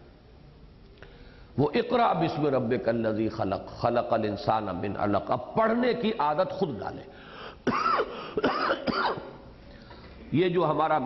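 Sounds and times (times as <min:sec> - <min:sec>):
person coughing: 0:07.6 - 0:09.4
person clearing throat: 0:07.7 - 0:09.4.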